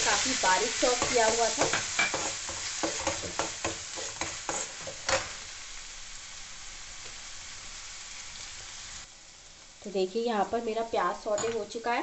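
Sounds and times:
food sizzling in oil: 0.0 - 12.0.

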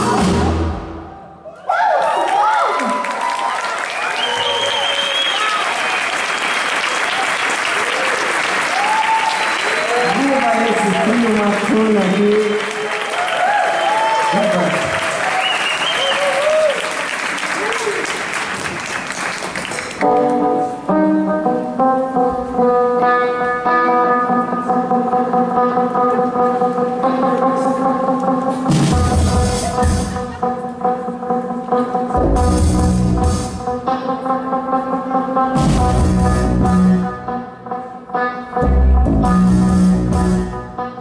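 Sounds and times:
audience applauding and cheering: 1.4 - 20.3
band playing held chords: 20.0 - 41.0.

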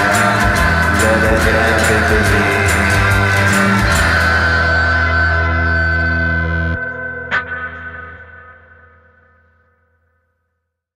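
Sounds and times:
sustained bass chord: 0.0 - 7.3
effects-laden guitar chord: 0.0 - 9.6.

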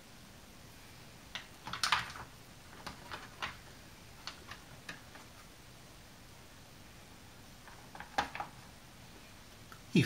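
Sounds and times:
quiet toy handling: 1.3 - 5.6.

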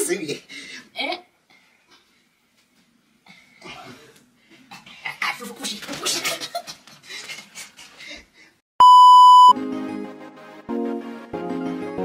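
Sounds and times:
electronic bleep: 8.8 - 9.6
background music with held chords: 9.6 - 12.0.

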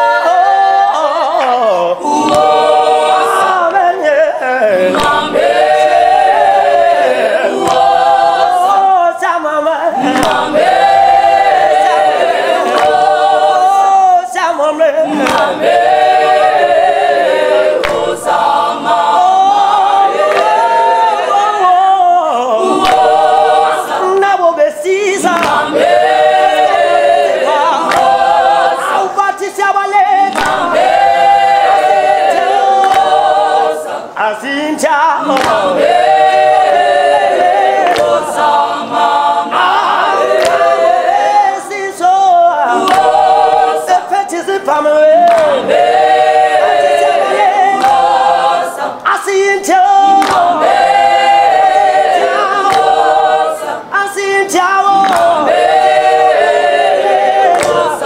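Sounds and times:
choir singing a cappella: 0.0 - 58.0.

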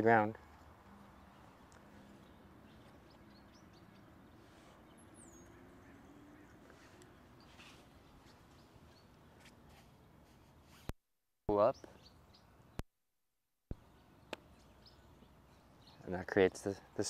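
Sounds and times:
faint outdoor background hiss: 0.0 - 10.9, 11.5 - 12.8, 13.7 - 17.0.

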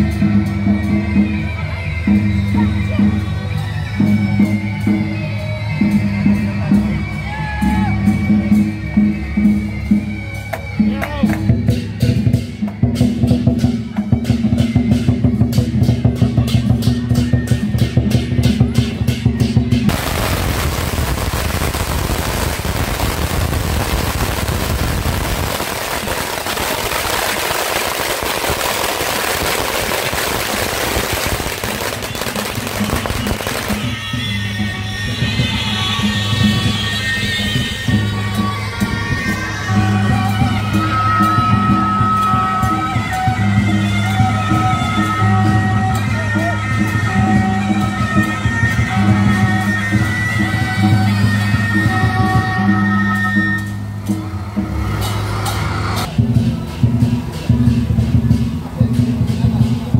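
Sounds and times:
firecrackers crackling: 19.9 - 39.4.

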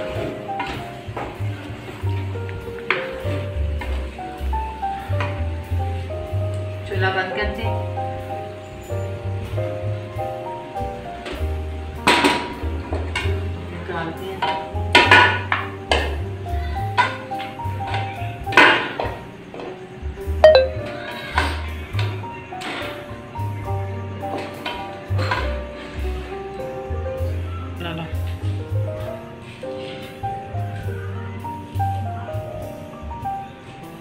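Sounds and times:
background music: 0.0 - 22.5.

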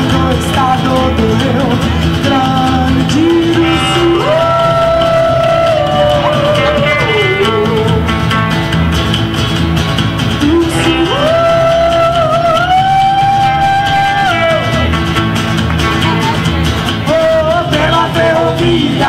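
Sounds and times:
woman singing: 0.0 - 8.1, 10.4 - 14.6
electric guitar: 0.0 - 19.0
strummed acoustic guitar: 0.0 - 19.0.

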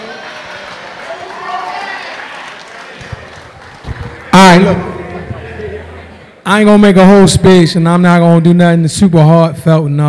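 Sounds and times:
faint crowd chatter: 0.0 - 6.5.

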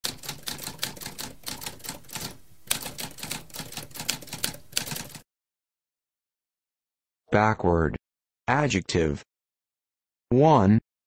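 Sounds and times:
typewriter keys clacking: 0.0 - 5.2.

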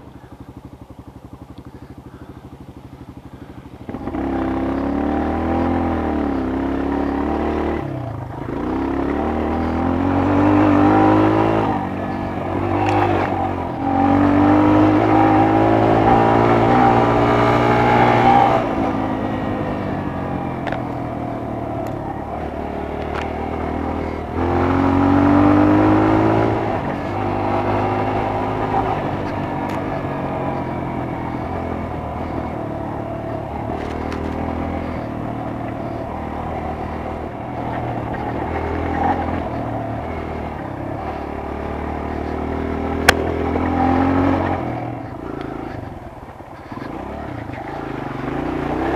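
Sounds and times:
dirt bike engine revving: 0.0 - 48.9
sharp clicks: 43.0 - 43.8.

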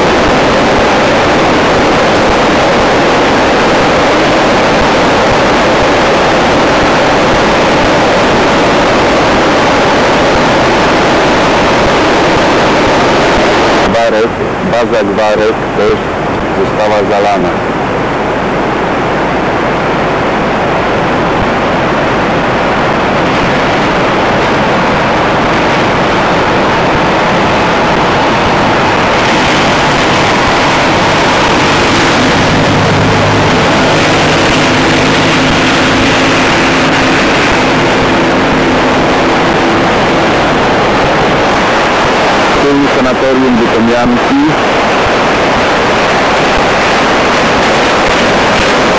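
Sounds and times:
low hum: 0.0 - 48.9
river rushing in flood: 0.0 - 48.9.

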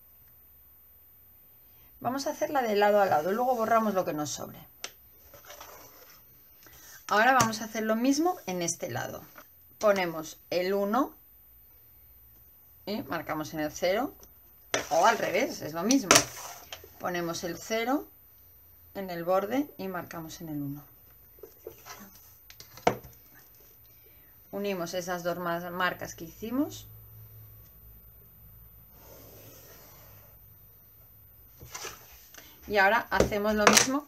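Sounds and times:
plastic ruler sliding on paper: 5.3 - 6.2, 16.2 - 16.9.

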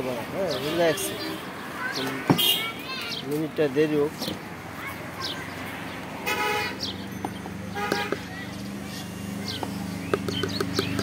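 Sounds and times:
vehicle horn honking: 2.4 - 2.8, 6.2 - 6.9, 7.7 - 8.2.

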